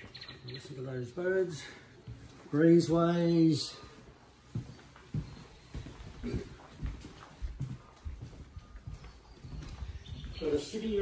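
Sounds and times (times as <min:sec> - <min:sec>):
footsteps on wooden floorboards: 0:01.4 - 0:11.0.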